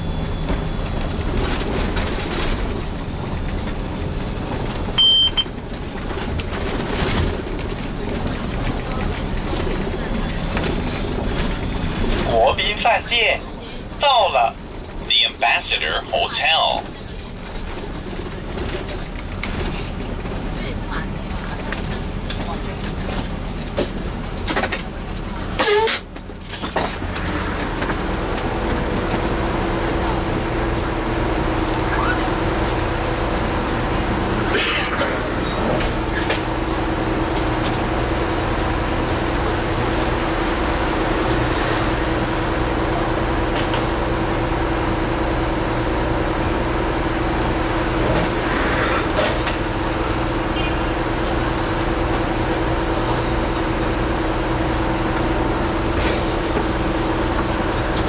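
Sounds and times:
coach engine idling: 0.0 - 25.6.

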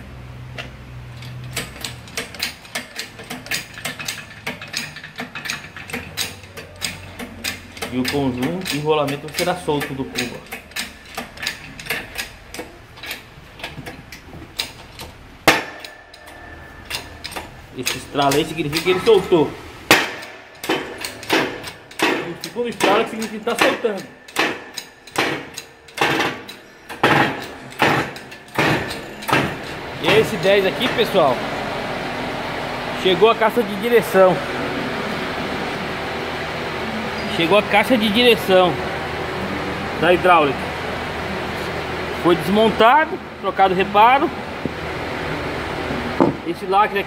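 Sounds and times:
low steady hum: 0.0 - 47.0
hub cracking in hydraulic press: 0.5 - 31.3
sharp mechanical clicks: 0.6 - 19.0, 19.9 - 29.5.

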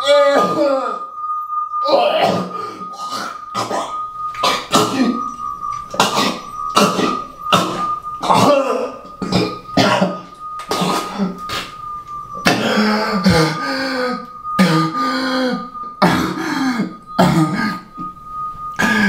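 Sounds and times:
steady high ringing tone: 0.0 - 19.0
man coughing and gagging: 2.2 - 5.2, 6.0 - 11.3, 12.5 - 17.9.

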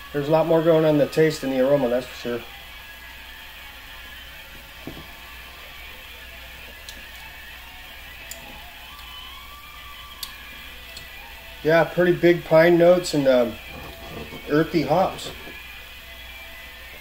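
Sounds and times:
steady low hum: 0.0 - 17.0
glass set down on table: 4.8 - 5.1.

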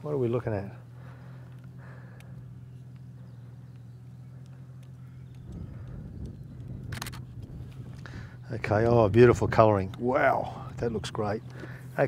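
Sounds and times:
steady low hum: 0.0 - 12.0
faint ticks: 1.4 - 8.1
sharp click: 6.2 - 7.5.

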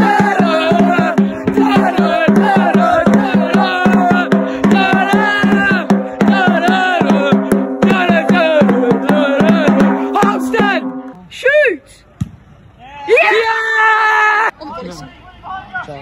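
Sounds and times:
drum beaten in fast rhythm: 0.0 - 11.2
voices singing: 0.0 - 11.2
steady held tone: 8.6 - 11.2.

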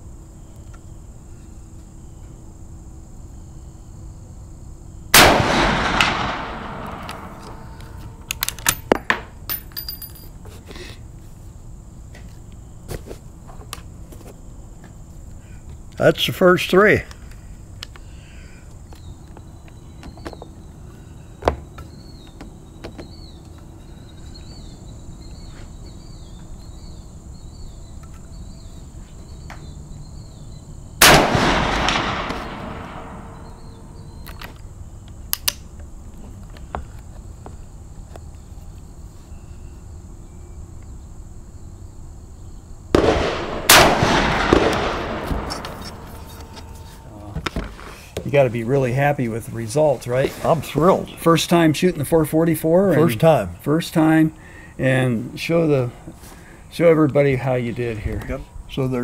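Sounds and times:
insects chirping: 0.0 - 59.0
rifle shots with echo: 5.2 - 8.2, 31.0 - 34.0, 43.0 - 46.2.

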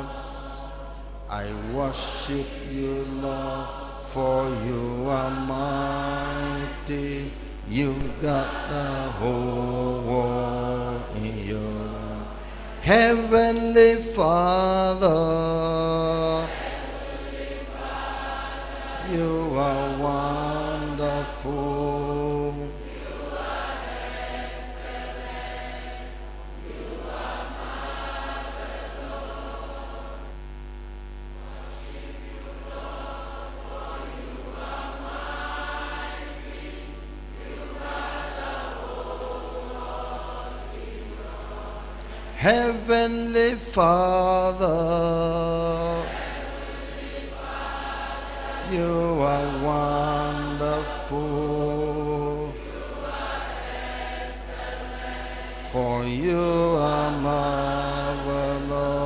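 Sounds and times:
congregation singing worship song: 0.0 - 59.0
lower harmony voice: 0.0 - 59.0
steady low hum: 0.0 - 59.0.

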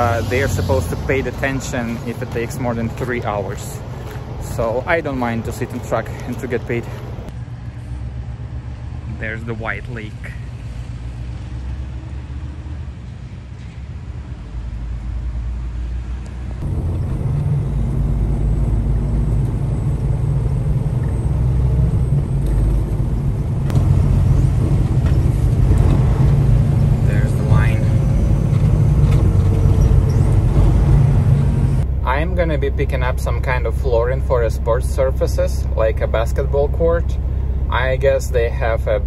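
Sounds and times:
truck diesel engine droning: 0.0 - 39.0.

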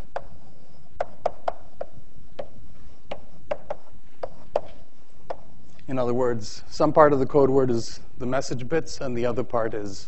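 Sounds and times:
chalk tapping on blackboard: 0.0 - 0.4, 1.0 - 5.5.

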